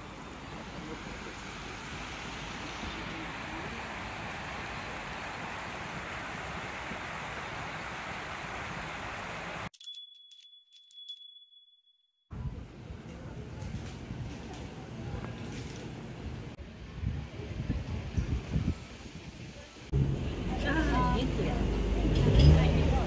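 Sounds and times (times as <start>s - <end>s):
river water flowing over stones: 0.0s - 9.7s
bright chime jingle: 9.7s - 12.0s.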